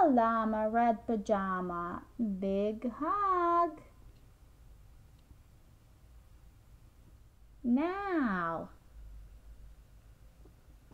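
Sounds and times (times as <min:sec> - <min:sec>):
woman saying a drawn-out word: 0:07.6 - 0:08.7.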